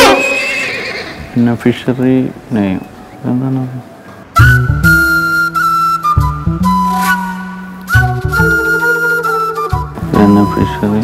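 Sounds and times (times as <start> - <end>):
man speaking: 10.1 - 11.0.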